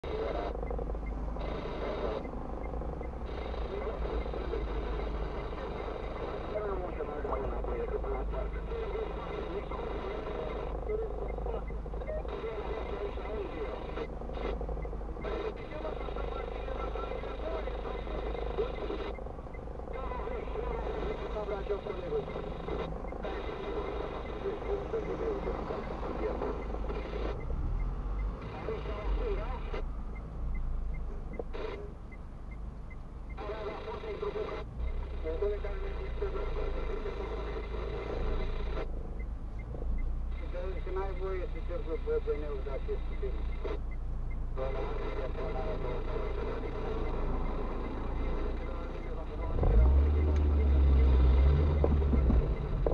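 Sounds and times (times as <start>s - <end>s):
car idling hum: 0.0s - 52.9s
indistinct talk: 19.9s - 27.4s.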